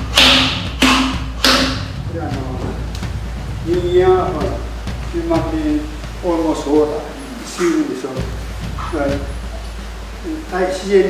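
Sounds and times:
sharp blows on wooden log: 0.0s - 2.0s.

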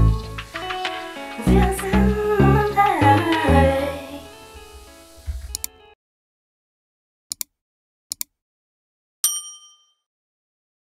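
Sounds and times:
bell ding sound effect: 9.2s - 10.1s.

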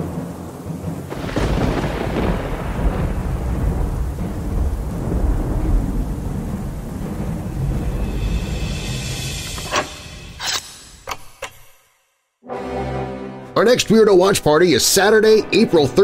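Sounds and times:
thunder rumbling: 0.0s - 10.4s
rain hissing: 0.0s - 11.0s.

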